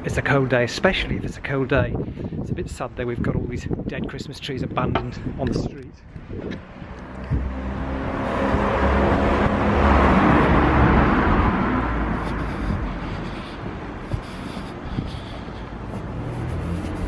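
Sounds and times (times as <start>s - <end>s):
motor vehicle passing by: 6.2s - 17.0s.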